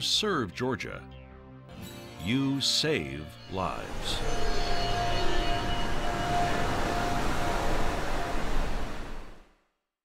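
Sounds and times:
faint wavering tone: 0:03.0 - 0:09.4.

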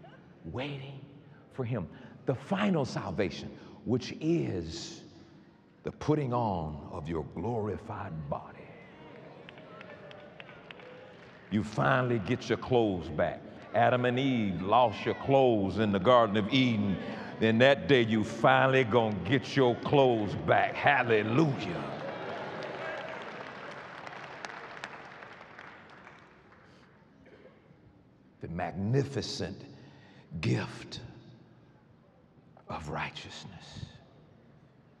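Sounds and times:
congregation applauding: 0:08.9 - 0:27.0.

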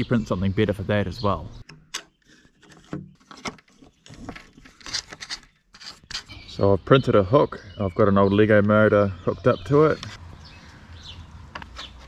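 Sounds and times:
plastic parts rubbing and tapping: 0:01.6 - 0:06.4, 0:11.5 - 0:12.0.

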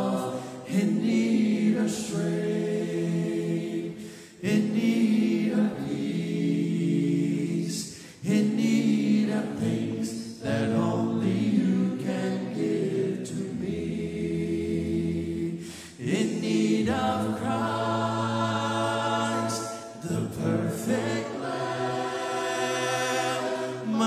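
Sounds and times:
congregation singing a hymn: 0:00.0 - 0:24.0.

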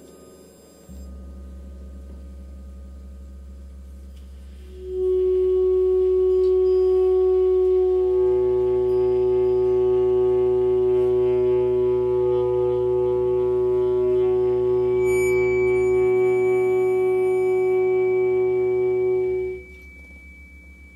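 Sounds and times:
low drone: 0:00.9 - 0:20.9
sustained saxophone tone: 0:04.2 - 0:20.9
ringing gong overtones: 0:04.8 - 0:20.9.

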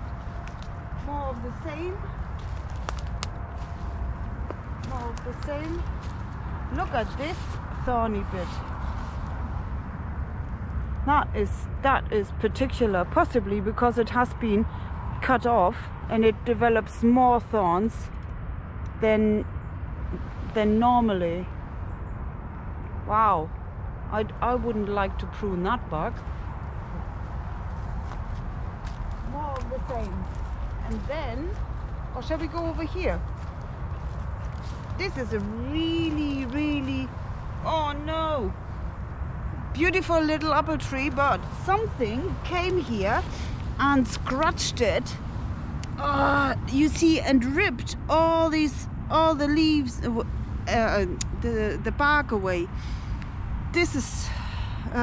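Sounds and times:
twigs crackling: 0:00.0 - 0:09.8, 0:26.1 - 0:38.0
wind buffeting microphone: 0:00.0 - 0:55.0.

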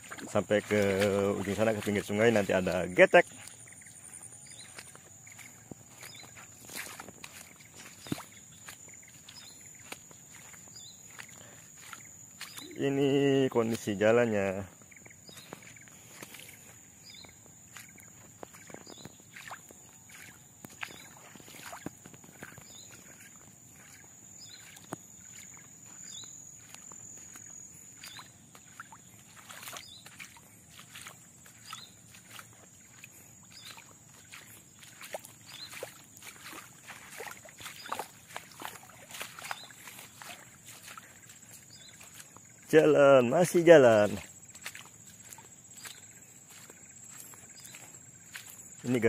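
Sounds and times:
footsteps through wet mud: 0:00.0 - 0:49.0
high insect whine: 0:00.0 - 0:49.0.

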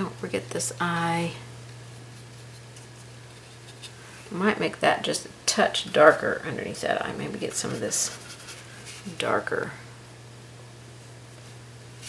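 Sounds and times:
steady low hum: 0:00.0 - 0:12.0
paintbrush scratching on plastic: 0:01.9 - 0:04.0, 0:07.5 - 0:09.1.

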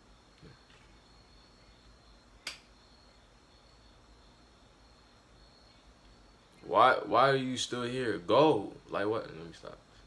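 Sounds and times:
faint high-pitched whine: 0:00.0 - 0:10.0
sharp click: 0:02.4 - 0:02.7.

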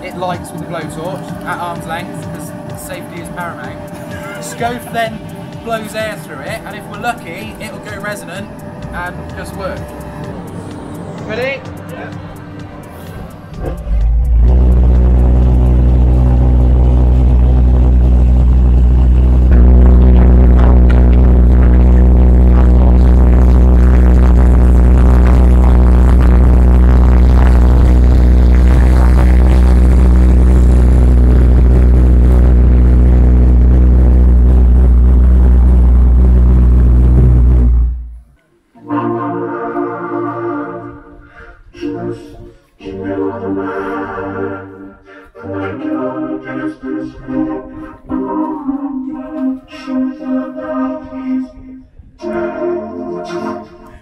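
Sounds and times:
pulse jet engine droning: 0:00.0 - 0:38.4
electronic synthesizer notes: 0:00.0 - 0:54.0.

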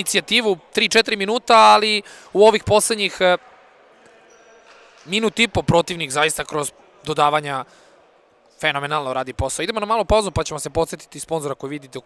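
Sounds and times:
man commentating: 0:00.0 - 0:03.4
sports hall room tone: 0:00.0 - 0:12.0.

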